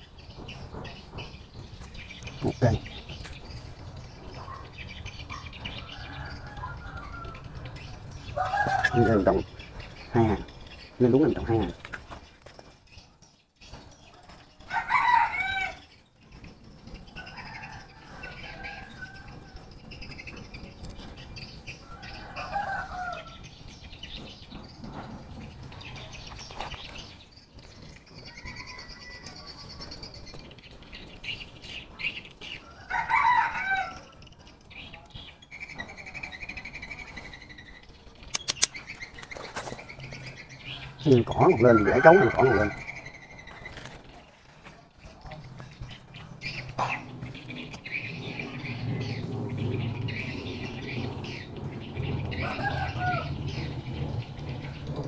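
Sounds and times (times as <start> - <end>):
chickens calling: 0.0 - 55.0
rooster crowing: 5.8 - 7.7, 8.4 - 9.4, 14.7 - 15.9, 17.2 - 19.7, 21.8 - 23.4, 28.3 - 29.7, 32.6 - 34.1, 41.5 - 42.9, 52.3 - 53.8.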